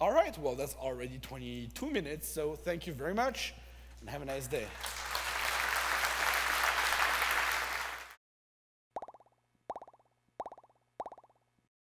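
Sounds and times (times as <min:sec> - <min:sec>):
audience applause: 0:04.6 - 0:08.2.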